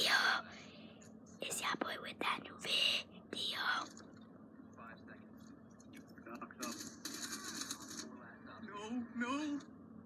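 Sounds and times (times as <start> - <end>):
boy whispering: 0.0 - 0.7, 1.4 - 3.9.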